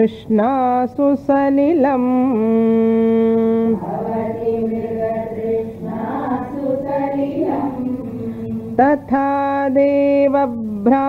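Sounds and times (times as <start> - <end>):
woman chanting melodically: 0.0 - 11.0.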